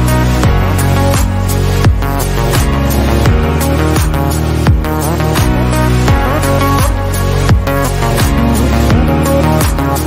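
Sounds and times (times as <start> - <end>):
electronic music with kick drum: 0.0 - 10.0.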